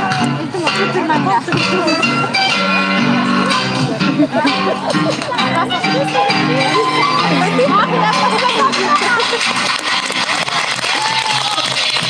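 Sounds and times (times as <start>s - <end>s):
crowd voices: 0.0s - 12.0s
loud music with held notes: 0.0s - 12.0s.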